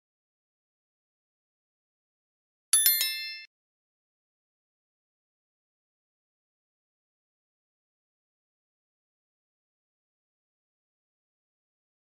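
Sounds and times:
bright chime: 2.8s - 3.5s.

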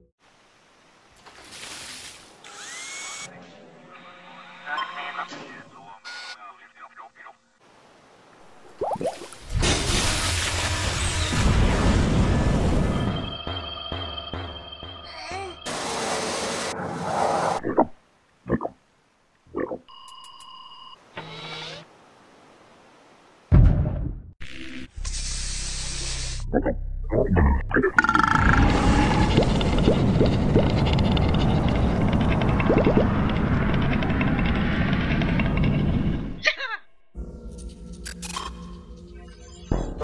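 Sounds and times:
drill-like mechanical whirring: 2.4s - 3.3s.

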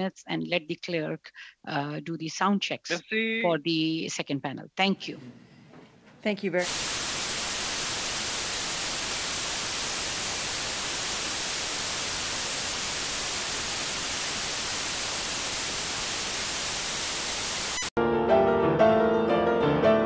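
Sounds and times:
static hiss: 6.5s - 17.9s.

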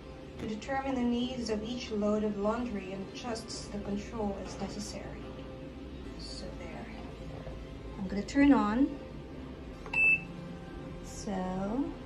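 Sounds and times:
washing machine short high beep: 9.9s - 10.3s.

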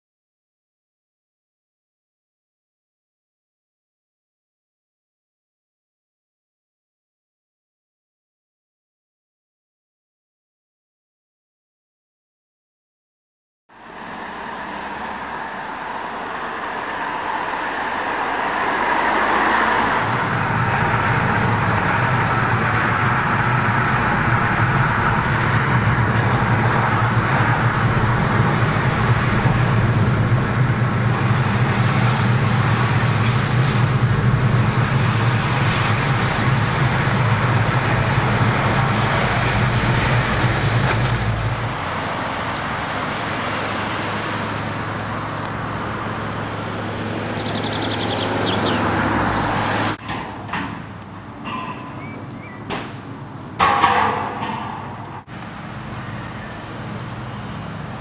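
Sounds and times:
car engine and road noise: 13.7s - 58.0s.

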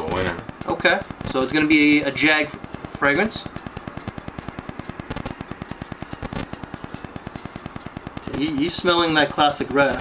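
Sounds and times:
microphone crackling static: 0.0s - 10.0s.

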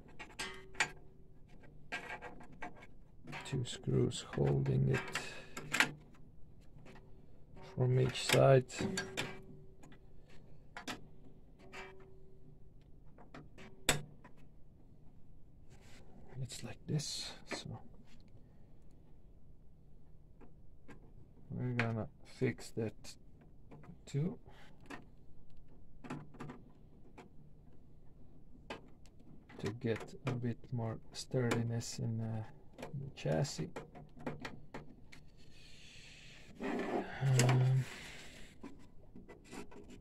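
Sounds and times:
screwdriver ticks and scrapes on metal: 0.0s - 6.1s.

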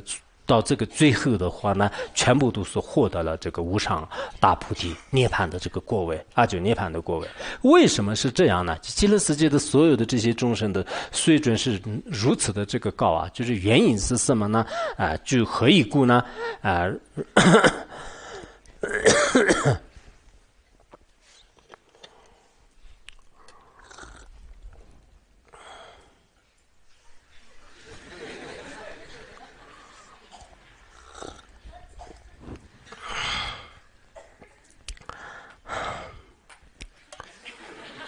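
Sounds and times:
man coughing: 17.2s - 18.0s, 18.8s - 19.9s, 33.0s - 34.6s
man exhaling breathily: 32.9s - 33.8s, 35.1s - 36.4s.

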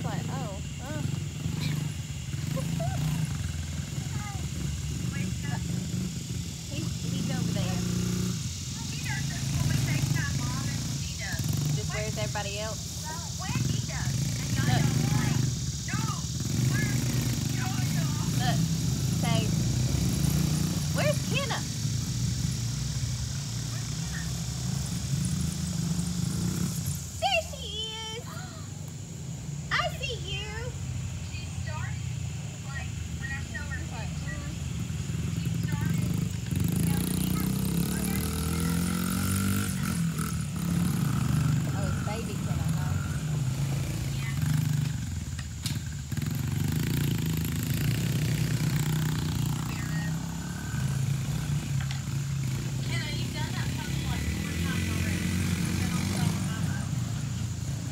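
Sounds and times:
small motorbike engines running: 0.0s - 57.9s.

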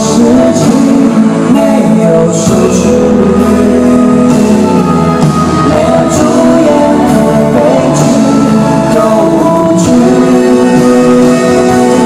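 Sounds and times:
live pop band playing chords: 0.0s - 12.0s.

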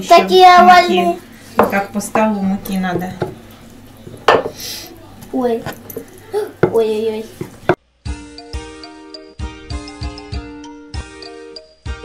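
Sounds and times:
rolling pins knocking on countertop: 4.1s - 4.6s.

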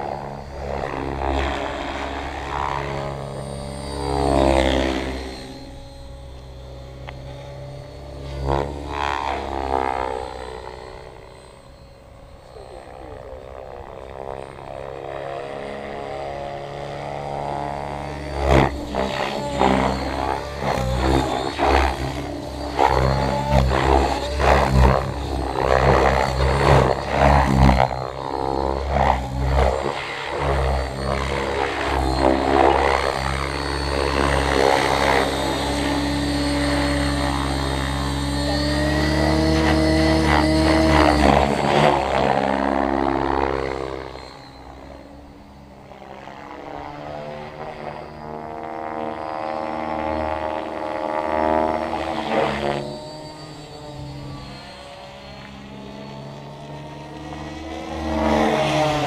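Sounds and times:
rc helicopter rotor and motor: 0.0s - 59.0s.

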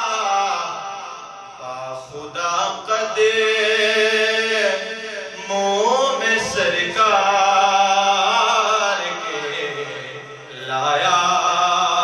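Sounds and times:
man chanting through microphone: 0.0s - 12.0s.

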